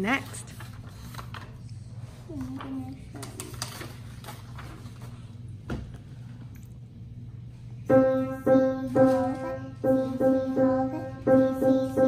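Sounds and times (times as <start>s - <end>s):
paper pages turning: 3.2s - 5.2s
steady low hum: 3.8s - 12.0s.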